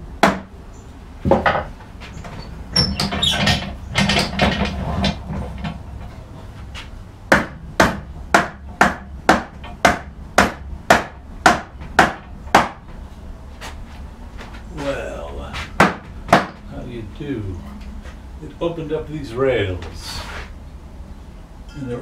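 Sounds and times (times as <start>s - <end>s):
mallet knocking on wood: 7.3s - 12.8s, 15.8s - 16.6s.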